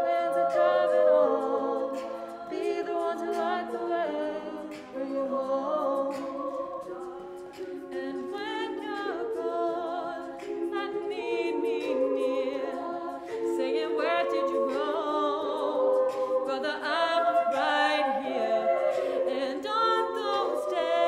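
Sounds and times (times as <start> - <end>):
a cappella group singing harmony: 0.0 - 21.0.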